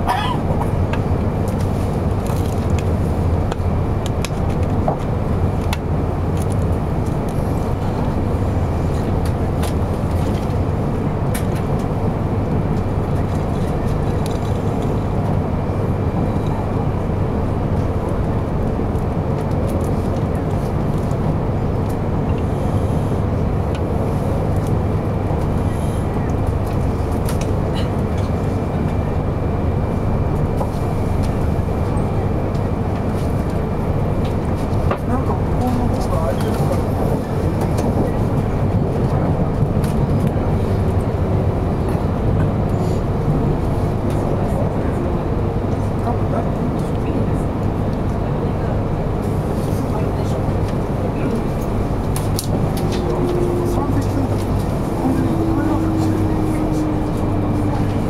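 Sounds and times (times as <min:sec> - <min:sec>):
train wheels rumbling on track: 0:00.0 - 0:58.0.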